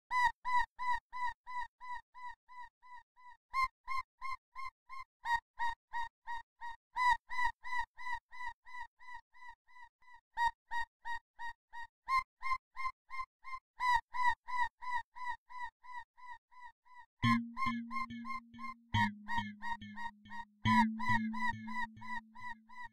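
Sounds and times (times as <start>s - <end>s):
repeated bright synth note: 17.2s - 22.9s.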